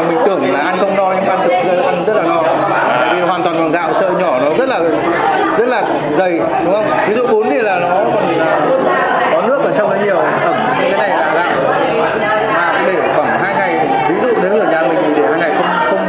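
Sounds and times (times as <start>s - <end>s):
overlapping chatter: 0.0s - 16.0s.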